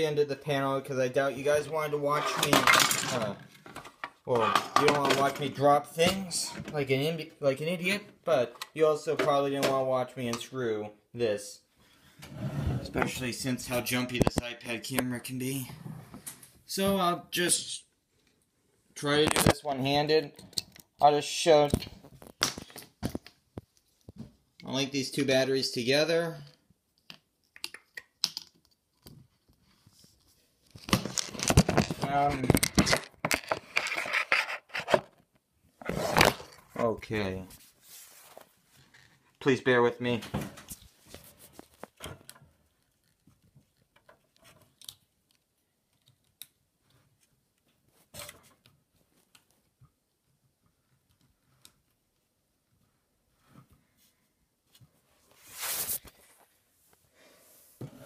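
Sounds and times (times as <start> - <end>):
rustling scrape: 37.5 - 38.9, 55.1 - 56.5
faint clicks and handling noises: 38.3 - 55.0.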